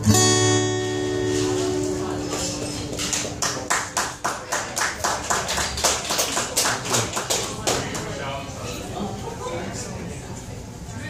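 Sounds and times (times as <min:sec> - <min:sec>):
audience hand claps: 0:01.3 - 0:08.2.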